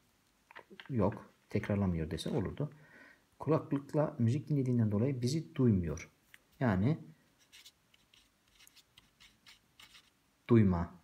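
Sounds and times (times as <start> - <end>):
marker pen scratching on paper: 7.4 - 10.2.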